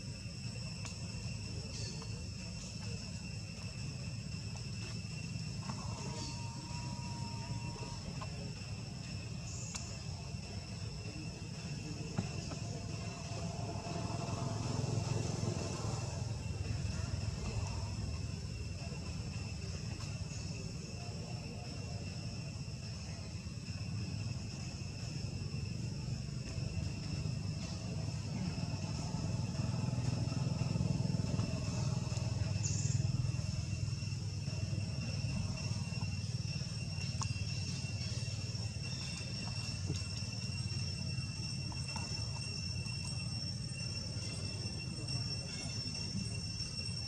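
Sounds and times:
insects calling: 0.0s - 47.0s.

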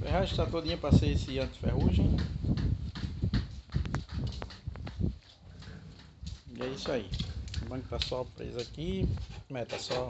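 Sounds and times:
footsteps on tiled floor: 0.2s - 9.6s
sharp clicks and knocks: 0.4s - 10.0s.

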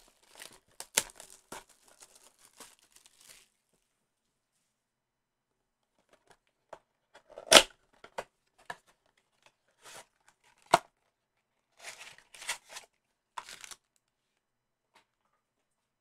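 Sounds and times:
cardboard tearing: 0.0s - 3.5s
foil packs rustling: 0.0s - 3.5s.

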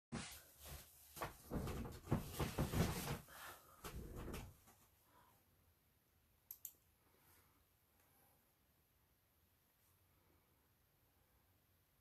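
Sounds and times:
soft knocks and clatters: 1.2s - 3.2s.

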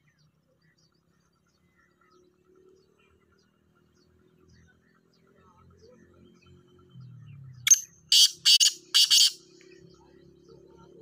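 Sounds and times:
francolin calling harshly: 7.7s - 9.4s.

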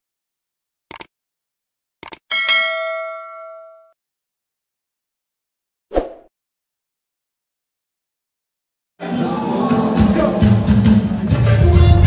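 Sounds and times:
bright bell ding: 2.3s - 4.0s.

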